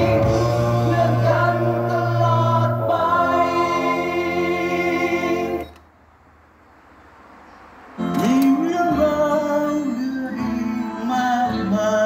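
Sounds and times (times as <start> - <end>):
song with singing over speakers: 0.0 - 6.0, 8.0 - 12.0.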